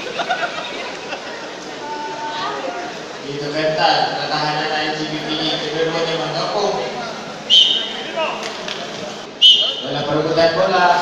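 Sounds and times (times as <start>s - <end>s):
murmur of voices: 0.0s - 11.0s
high-pitched whistle blast: 7.5s - 8.0s, 9.4s - 9.9s.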